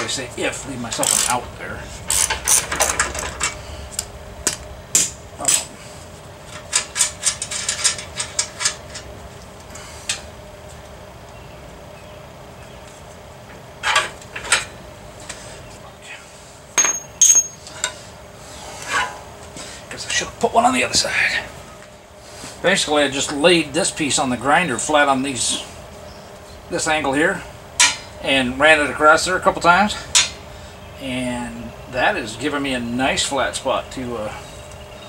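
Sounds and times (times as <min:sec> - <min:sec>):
metal parts clinking and rattling: 0:06.5 - 0:09.1, 0:16.8 - 0:17.6.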